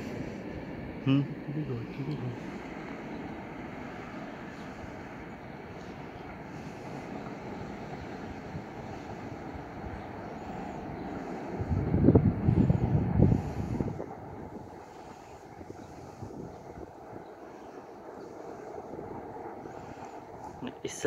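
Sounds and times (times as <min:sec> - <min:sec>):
distant train rumble: 0:00.0 - 0:21.0
wind buffeting microphone: 0:00.0 - 0:21.0.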